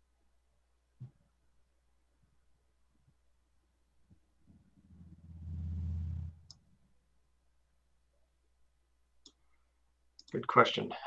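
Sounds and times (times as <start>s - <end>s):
low rumble: 4.5s - 6.7s.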